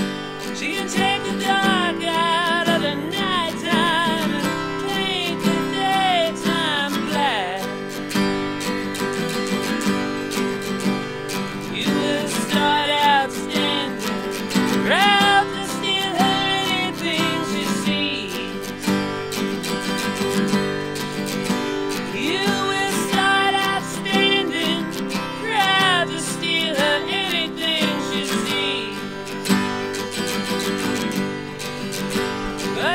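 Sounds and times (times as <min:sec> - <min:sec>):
acoustic guitar strumming: 0:00.0 - 0:32.9.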